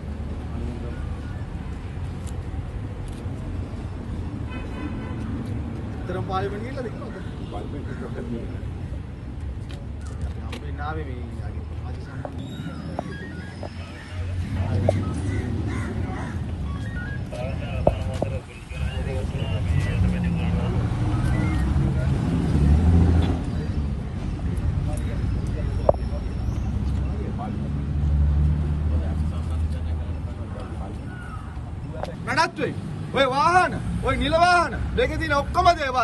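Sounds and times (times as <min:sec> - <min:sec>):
street traffic rumble: 0:00.0 - 0:36.0
faint voices: 0:06.0 - 0:27.8
people talking: 0:10.4 - 0:16.5, 0:17.1 - 0:22.4, 0:24.8 - 0:27.8
man speaking: 0:17.2 - 0:21.2.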